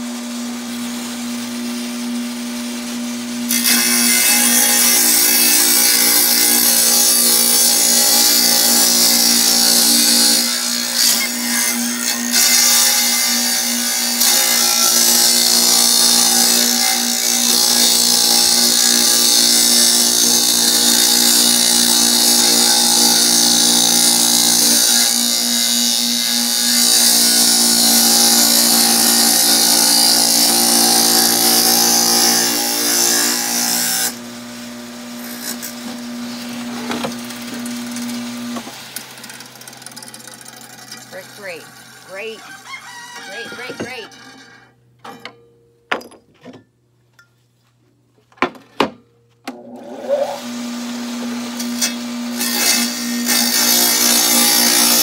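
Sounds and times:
tile saw motor humming: 2.1s - 44.8s, 49.5s - 55.0s
saw blade cutting into brick: 3.5s - 34.2s, 35.2s - 42.4s, 51.2s - 55.0s.

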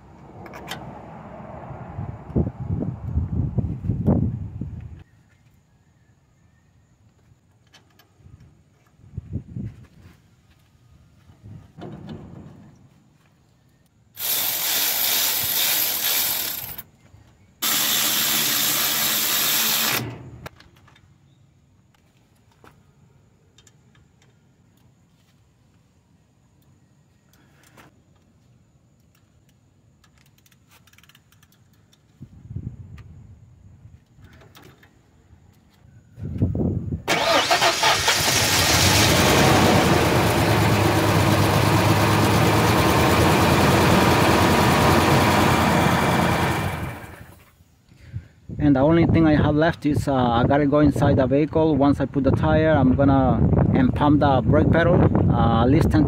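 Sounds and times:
cordless ratchet running: 14.2s - 16.8s, 17.6s - 20.1s
metal parts clicking and knocking: 30.0s - 32.1s
loud steady mechanical running: 38.3s - 47.3s.

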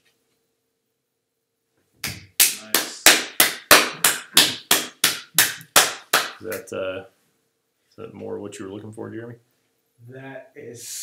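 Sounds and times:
slow hand clapping: 2.0s - 6.6s.

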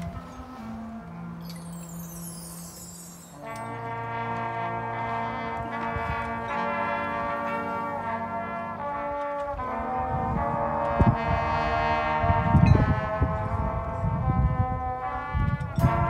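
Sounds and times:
brass band playing chords: 0.0s - 16.0s.

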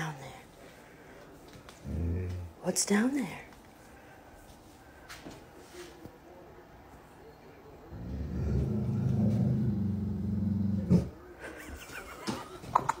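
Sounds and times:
dog growling low: 1.8s - 2.6s, 7.9s - 11.2s.

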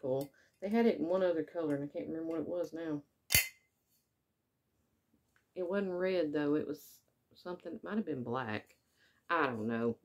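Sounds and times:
sharp click of hard object: 3.3s - 3.7s.

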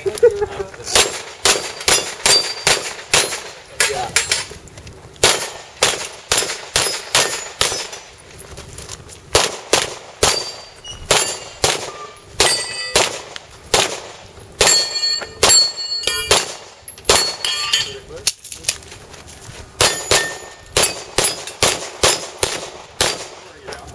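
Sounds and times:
handgun shots: 0.9s - 4.5s, 5.2s - 8.0s, 9.3s - 17.4s, 19.8s - 23.4s
steel targets ringing: 1.6s - 4.5s, 10.2s - 13.1s, 14.6s - 18.1s, 19.8s - 22.2s.

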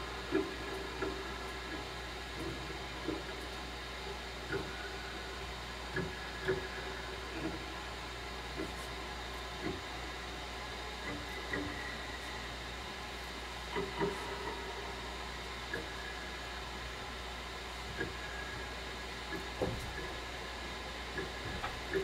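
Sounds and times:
room noise hiss and hum: 0.0s - 22.0s.

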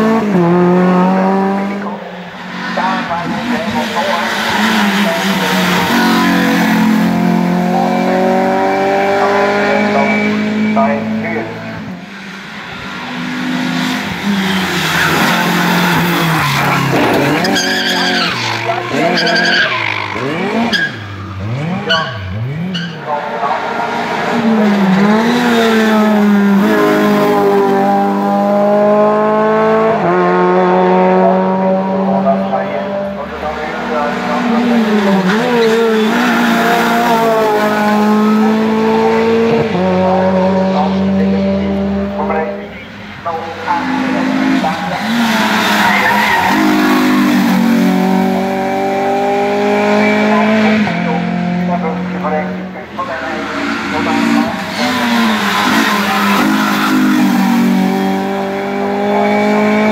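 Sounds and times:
race cars accelerating past: 0.0s - 59.9s.

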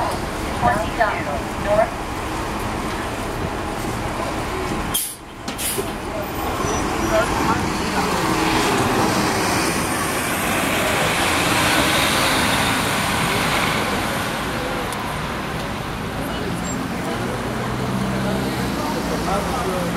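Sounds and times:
bus engine accelerating: 0.0s - 19.9s
street traffic: 0.0s - 19.9s.

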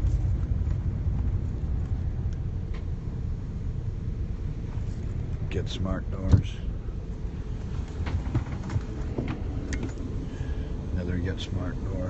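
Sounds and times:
bus rumbling from inside: 0.0s - 12.0s.

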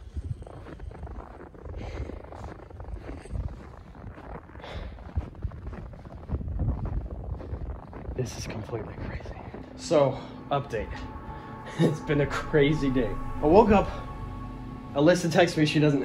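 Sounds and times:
wind buffeting microphone: 0.0s - 10.0s
footsteps crunching through snow: 0.0s - 14.8s.

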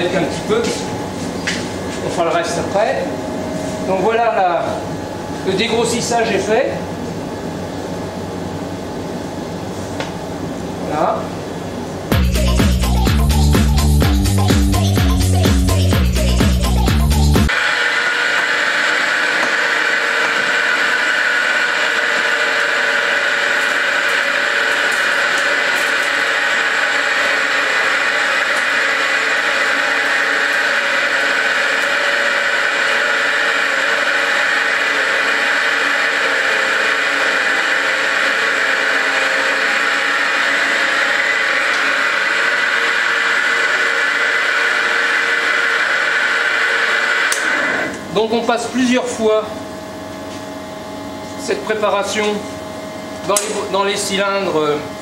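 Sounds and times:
grinding mill whirring: 0.0s - 55.0s
music: 12.1s - 17.5s.

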